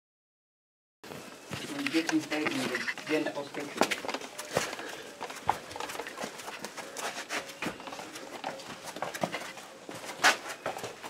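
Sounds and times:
footsteps on rocky floor: 0:01.1 - 0:11.0.

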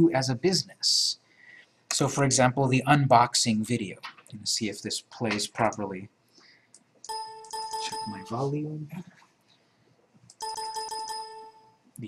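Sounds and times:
system chime ringing tone: 0:07.1 - 0:08.5, 0:10.4 - 0:11.8.

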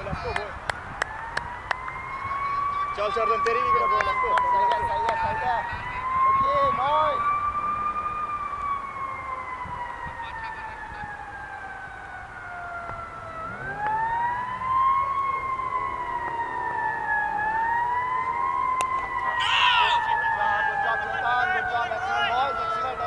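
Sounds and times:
emergency vehicle siren wailing: 0:00.0 - 0:23.0.

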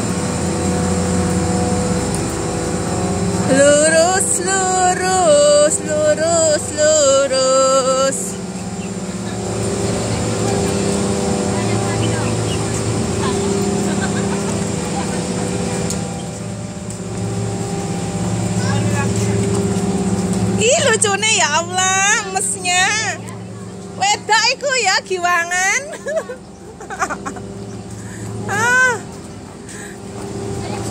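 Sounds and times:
low hum of plant equipment: 0:00.0 - 0:30.9
voices calling out: 0:02.9 - 0:30.9.

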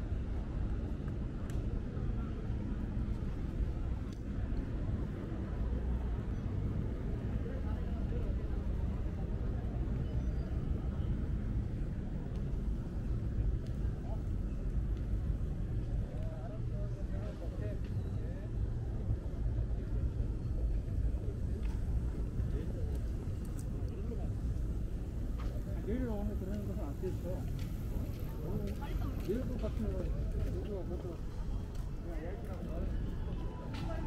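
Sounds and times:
chatter of passersby: 0:00.0 - 0:34.0
steady low rumble: 0:00.0 - 0:34.0.

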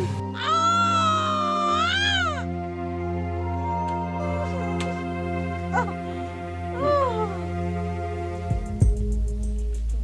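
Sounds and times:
sustained background music: 0:00.0 - 0:10.0
woman wailing in pain: 0:00.3 - 0:02.5.

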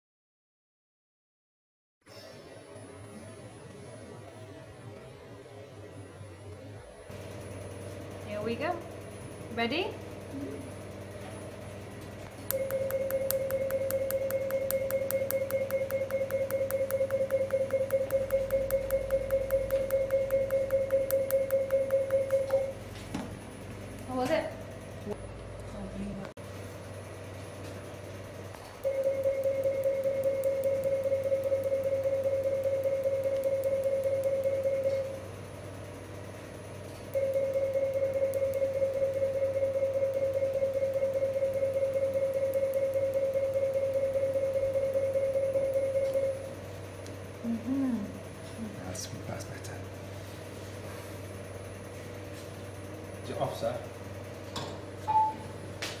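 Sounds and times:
steady low hum: 0:02.2 - 0:56.0
laser machine firing beep: 0:12.5 - 0:22.8, 0:28.8 - 0:35.2, 0:37.1 - 0:46.5
short electronic beep: 0:12.5 - 0:22.8, 0:55.1 - 0:55.5.

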